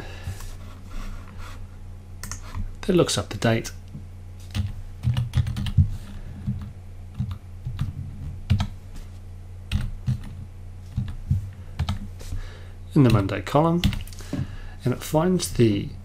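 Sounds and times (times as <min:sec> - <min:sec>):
steady low hum: 0:00.0 - 0:16.0
typing on computer keyboard: 0:04.5 - 0:05.8, 0:09.7 - 0:10.3.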